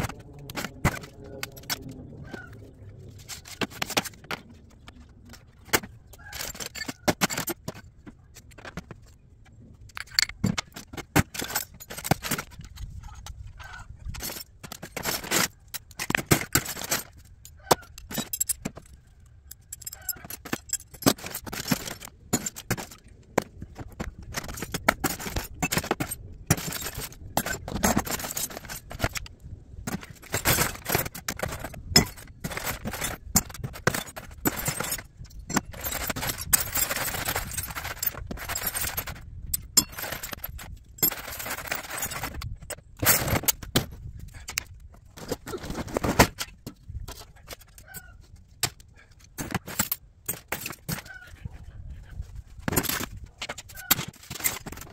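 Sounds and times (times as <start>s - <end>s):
scrap metal clinking: 3.2s - 9.2s, 9.8s - 51.4s.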